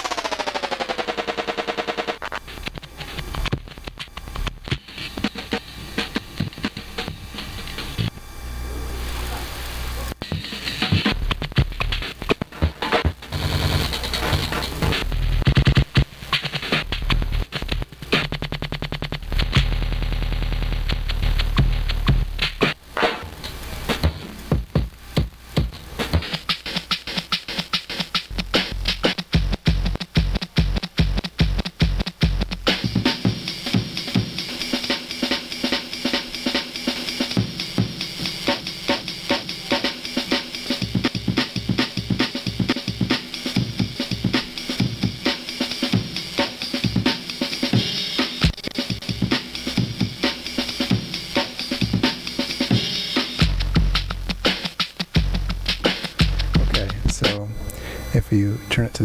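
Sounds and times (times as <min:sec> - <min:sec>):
stuttering drum loop: 0:00.0 - 0:08.3, 0:08.9 - 0:59.0
synth noise bed: 0:00.0 - 0:26.1, 0:47.7 - 0:59.0.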